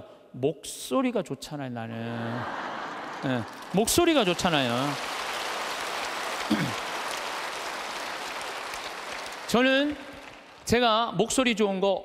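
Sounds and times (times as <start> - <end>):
large audience applauding: 2.3 - 10.9.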